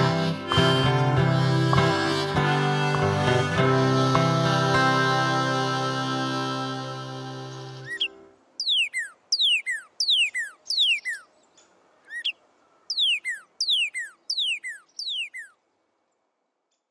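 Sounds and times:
songbird whistling falling notes: 7.8s - 11.3s, 12.1s - 15.6s.

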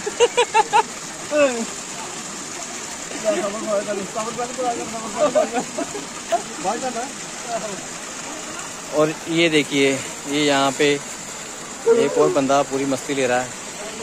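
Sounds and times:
water falling over rocks: 0.0s - 14.0s
people talking: 11.8s - 14.0s.

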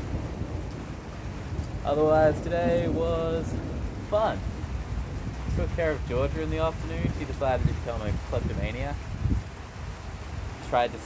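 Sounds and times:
low rumble of thunder: 0.0s - 11.0s
rain hiss: 0.0s - 11.0s.

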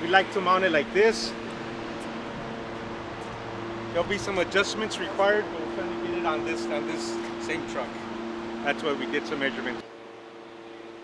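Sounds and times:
machinery hum: 0.0s - 11.0s.

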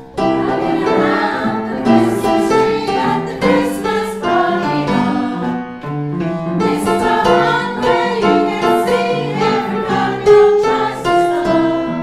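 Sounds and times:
group singing a carol: 0.0s - 5.8s, 6.6s - 12.0s.

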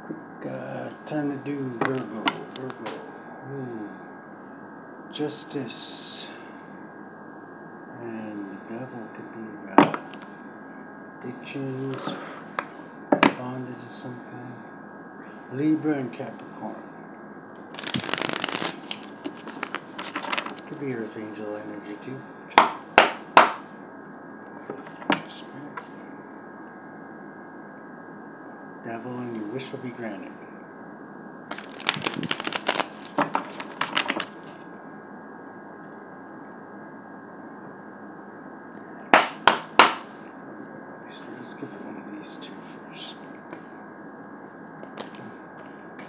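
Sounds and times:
steady low hiss: 0.0s - 46.0s
cards being shuffled: 17.7s - 20.6s, 31.5s - 34.6s, 44.8s - 45.2s
card deck snapping: 17.8s - 20.6s.

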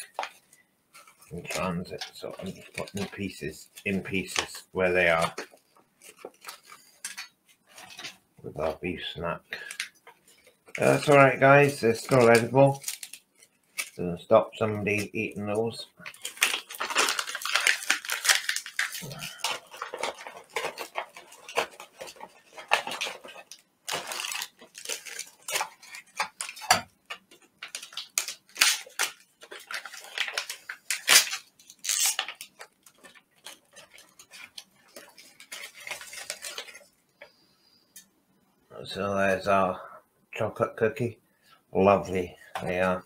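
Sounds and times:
plastic pouches crinkling: 0.0s - 37.4s, 42.2s - 43.0s.

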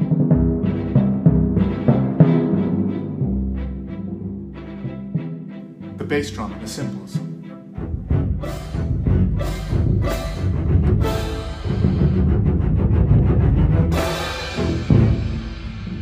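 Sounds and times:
bass drum booming rumble: 7.9s - 16.0s
clash cymbals crashing: 14.0s - 16.0s.

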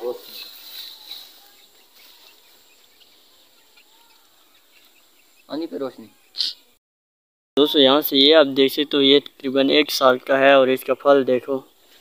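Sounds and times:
bird chirps: 0.0s - 6.8s.

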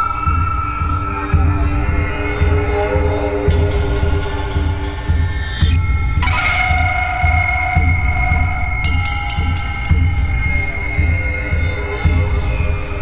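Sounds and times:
low repeating beat: 0.1s - 13.0s.

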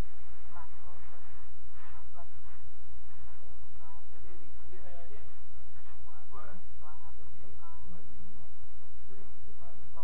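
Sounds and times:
faint distant voices: 0.0s - 10.0s
steady low hum: 0.0s - 10.0s.

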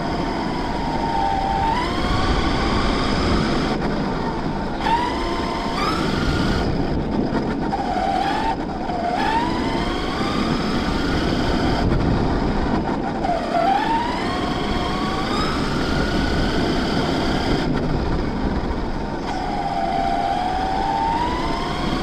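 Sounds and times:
toy truck motor whine: 0.0s - 3.8s, 4.6s - 6.9s, 7.7s - 11.9s, 13.2s - 17.7s, 19.2s - 22.0s
tyres rumbling on road: 0.0s - 22.0s.

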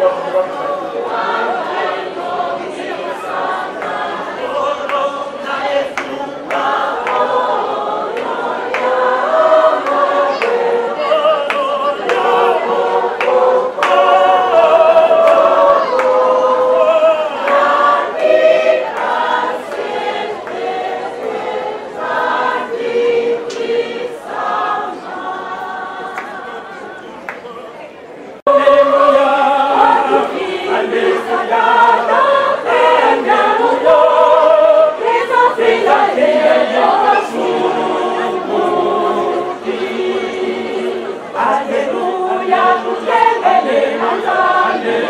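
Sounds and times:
choir singing a hymn: 0.0s - 27.2s, 28.4s - 45.0s.

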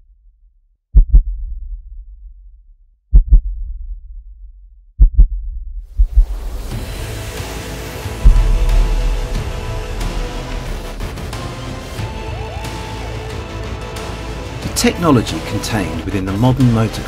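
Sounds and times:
heartbeat thumps: 0.9s - 6.8s, 8.2s - 11.3s
deep boom: 3.1s - 7.3s, 8.0s - 12.1s
music: 6.2s - 17.0s.

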